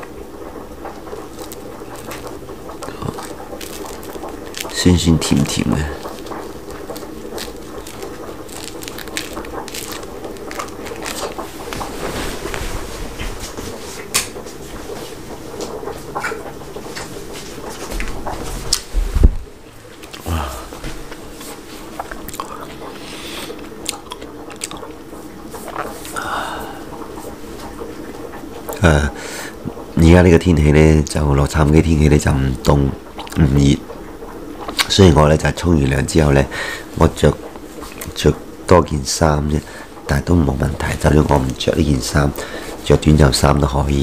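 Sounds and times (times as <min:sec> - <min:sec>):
biting and chewing: 0:00.8 - 0:13.4, 0:20.0 - 0:22.9, 0:23.5 - 0:24.9, 0:25.6 - 0:26.1
orange peel tearing: 0:01.4 - 0:12.6.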